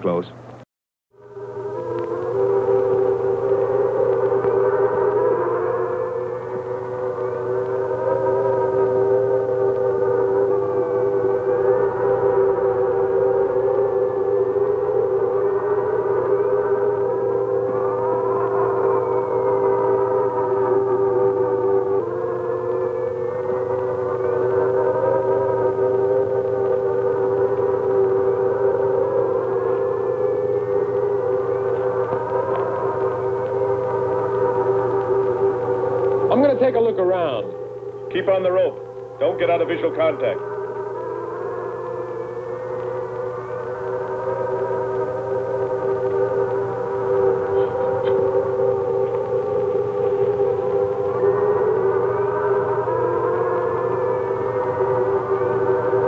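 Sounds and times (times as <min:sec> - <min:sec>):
sustained electronic drones: 0:00.0 - 0:00.6, 0:01.2 - 0:56.0.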